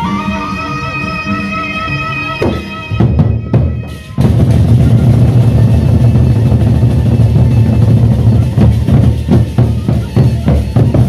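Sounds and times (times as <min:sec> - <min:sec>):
barrel drums beaten with sticks: 0:02.4 - 0:11.0.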